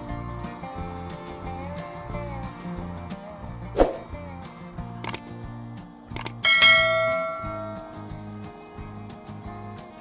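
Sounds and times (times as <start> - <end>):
background music with steady beat: 0.0 - 10.0
quick clicks: 5.0 - 5.3, 6.1 - 6.4
bell chime: 6.4 - 8.0.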